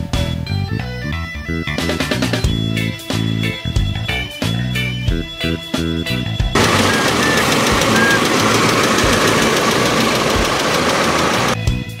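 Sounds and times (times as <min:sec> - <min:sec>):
car engine idling: 0:06.6 - 0:11.6.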